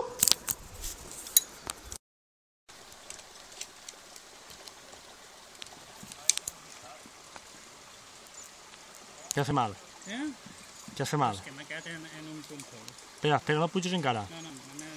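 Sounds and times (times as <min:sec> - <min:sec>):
river water rushing: 0:02.7 - 0:14.9.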